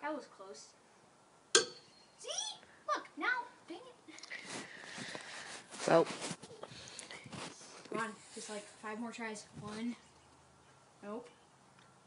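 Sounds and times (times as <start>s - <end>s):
toy ring landing with a knock: 1.6s - 1.9s.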